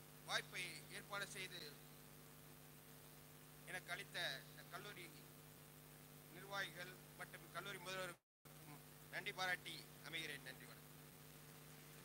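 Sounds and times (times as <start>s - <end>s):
low electrical buzz: 0.0s - 12.0s
man speaking over public address: 0.3s - 1.8s, 3.7s - 5.2s, 6.3s - 8.2s, 9.1s - 10.8s.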